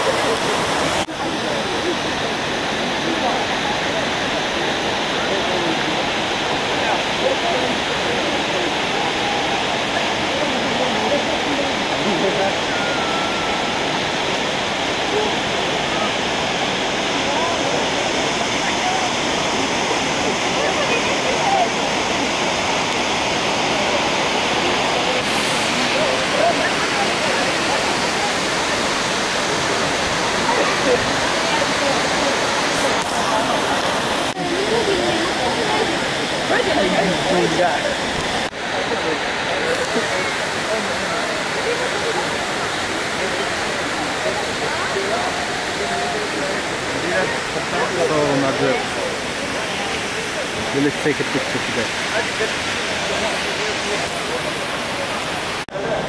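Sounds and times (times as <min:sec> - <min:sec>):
faint voices: 0:00.0 - 0:56.0
waterfall rushing: 0:00.0 - 0:56.0.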